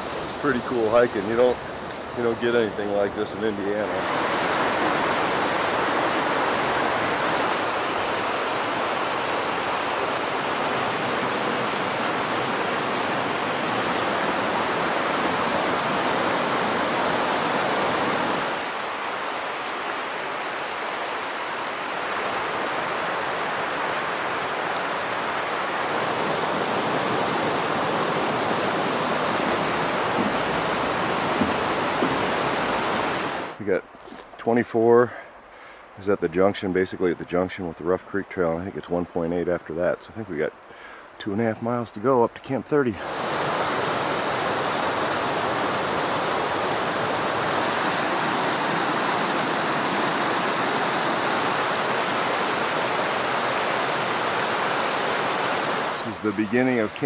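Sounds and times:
stream rushing over rapids: 0:00.0 - 0:41.4, 0:42.4 - 0:57.0.

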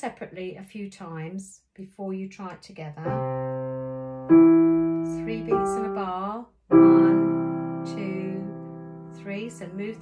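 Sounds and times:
piano chords: 0:03.0 - 0:10.0.

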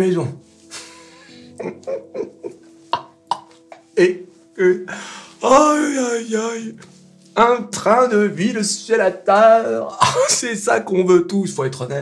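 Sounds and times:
soft background music: 0:00.0 - 0:12.0
man laughing under his breath: 0:00.7 - 0:03.3.

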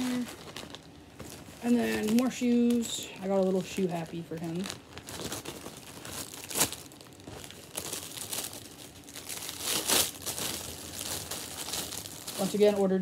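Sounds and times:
plastic bag crinkling: 0:00.0 - 0:13.0.

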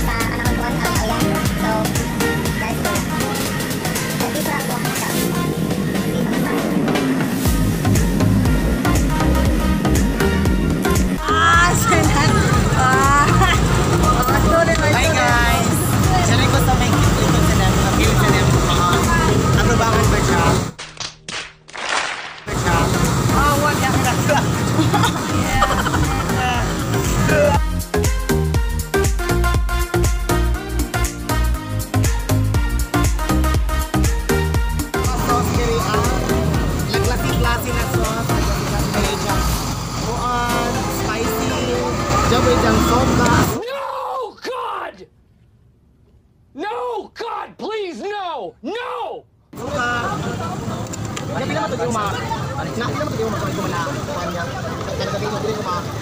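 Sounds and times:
people talking: 0:00.0 - 0:07.1, 0:11.2 - 0:20.7, 0:22.5 - 0:27.6, 0:35.1 - 0:43.6, 0:49.6 - 0:56.0
passing traffic rumble: 0:00.0 - 0:20.8, 0:22.4 - 0:43.6, 0:49.6 - 0:56.0.

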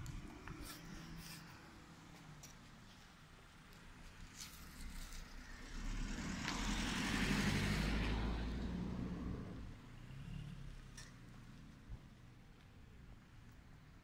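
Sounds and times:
car driving past: 0:04.7 - 0:11.7.

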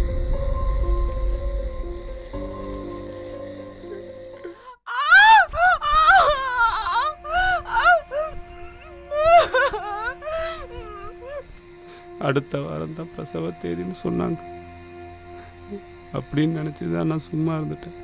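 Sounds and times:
dramatic film score: 0:00.0 - 0:18.0
woman crying out in pain: 0:04.6 - 0:11.4.

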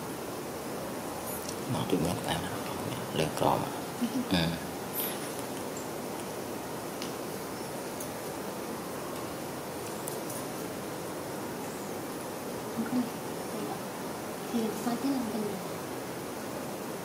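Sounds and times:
steady background hiss: 0:00.0 - 0:17.0.

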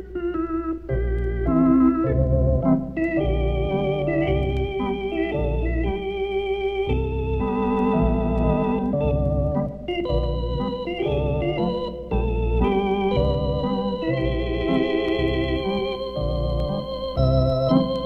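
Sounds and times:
lounge organ chords with vibrato: 0:00.0 - 0:18.0.

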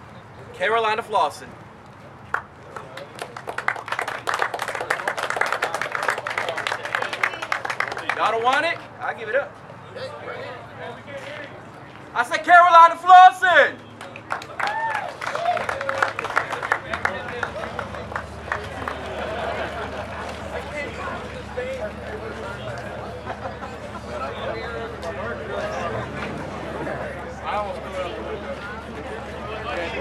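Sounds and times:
crowd voices talking: 0:00.0 - 0:30.0
audience applauding: 0:02.3 - 0:08.8, 0:13.9 - 0:20.7
hand claps: 0:02.3 - 0:08.9, 0:13.8 - 0:19.3.

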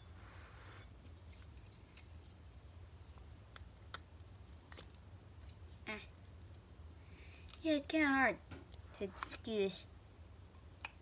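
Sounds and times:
soft rustle: 0:00.0 - 0:03.4
low room hum: 0:00.0 - 0:11.0.

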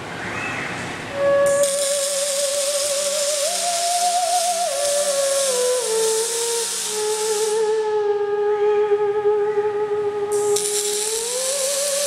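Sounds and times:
theremin sliding with vibrato: 0:01.1 - 0:12.0
welding arcs hissing: 0:01.5 - 0:07.8, 0:10.5 - 0:12.0.

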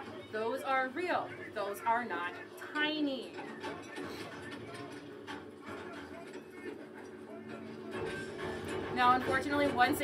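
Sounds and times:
faint murmuring voices: 0:00.0 - 0:10.0.

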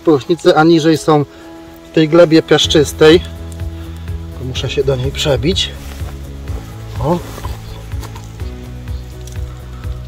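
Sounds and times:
background music: 0:00.0 - 0:10.0
hand scraping through mulch: 0:05.0 - 0:08.4.

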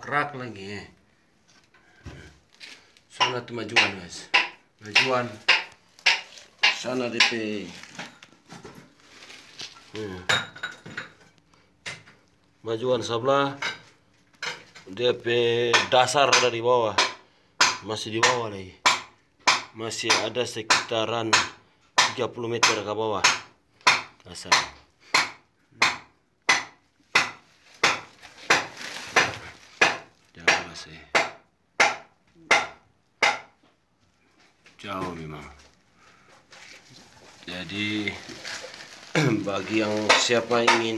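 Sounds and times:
sharp metallic knocks: 0:03.2 - 0:07.4
hand hammer striking: 0:03.2 - 0:07.5, 0:31.2 - 0:33.6, 0:39.7 - 0:40.9.

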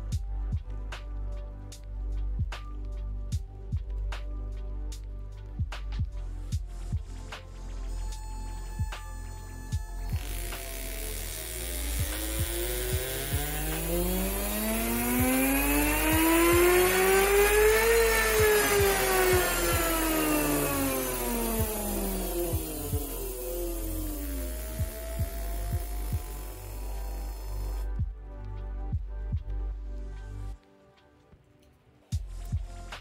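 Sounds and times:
electric motor whine: 0:06.8 - 0:28.0.

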